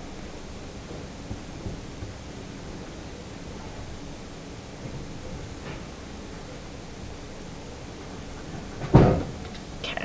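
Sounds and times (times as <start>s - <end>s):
steady faint hiss: 0.0s - 10.0s.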